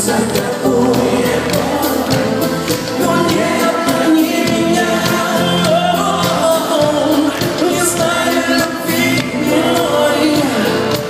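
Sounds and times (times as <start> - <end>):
live pop band playing: 0.0 - 11.0
man singing lead vocal: 0.0 - 11.0.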